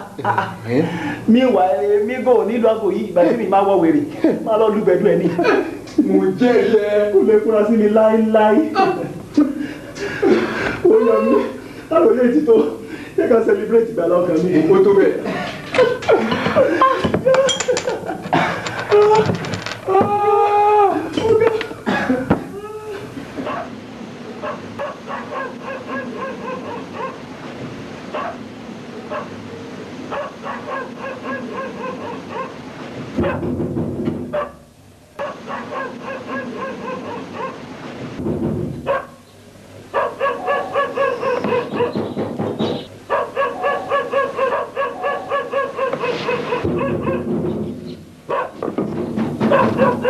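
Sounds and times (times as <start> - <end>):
dogs barking and yapping: 23.3 - 27.4, 28.1 - 33.6, 34.3 - 37.7, 38.8 - 39.2, 39.8 - 50.0.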